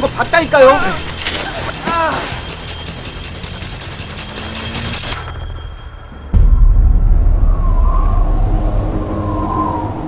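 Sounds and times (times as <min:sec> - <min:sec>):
high wavering drone: 0:05.5 - 0:10.0
deep rumbling boom: 0:06.2 - 0:10.0.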